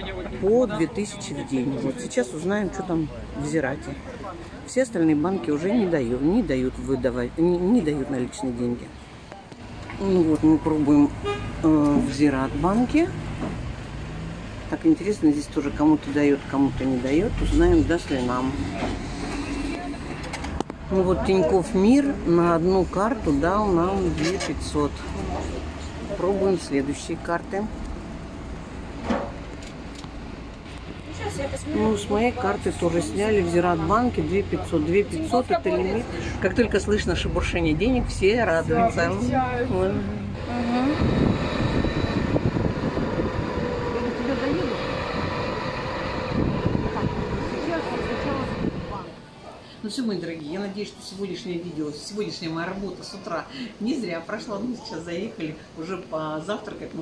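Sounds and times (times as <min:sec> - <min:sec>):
people talking: 0:10.0 - 0:13.1, 0:14.8 - 0:19.0, 0:20.9 - 0:27.7, 0:31.0 - 0:41.4, 0:43.2 - 0:45.0, 0:46.7 - 0:49.2
vehicle engine running: 0:40.2 - 0:49.1.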